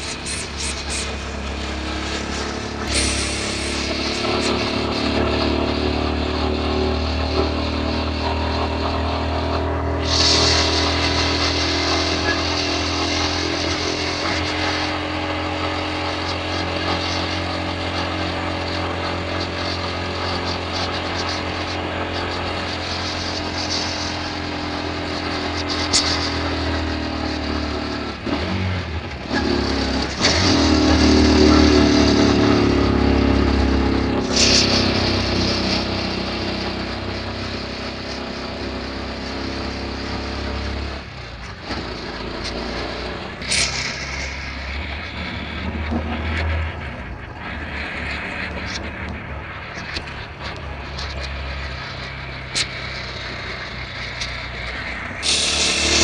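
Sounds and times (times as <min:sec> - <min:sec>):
road noise inside car: 0:00.0 - 0:56.0
vehicle engine: 0:00.0 - 0:56.0.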